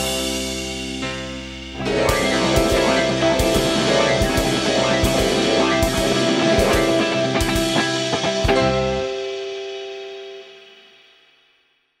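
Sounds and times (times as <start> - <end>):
rock song with guitar and drums: 0.0 - 10.7
final held guitar chord: 1.2 - 9.5.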